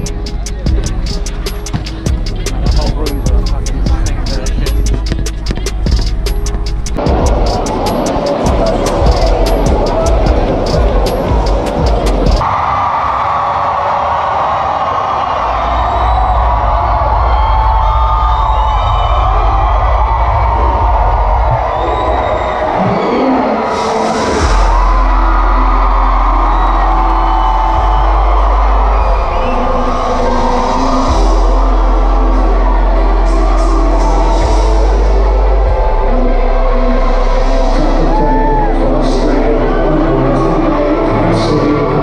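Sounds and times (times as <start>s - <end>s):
heavy deep bass: 0.0s - 12.4s, 16.2s - 42.0s
loud live concert music: 0.0s - 12.5s, 16.6s - 42.0s
crowd cheering: 0.0s - 42.0s.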